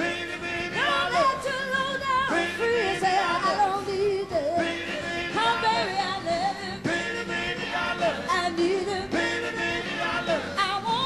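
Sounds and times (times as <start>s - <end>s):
woman singing blues: 0.8s - 4.6s, 10.6s - 11.0s
band playing: 4.4s - 10.7s.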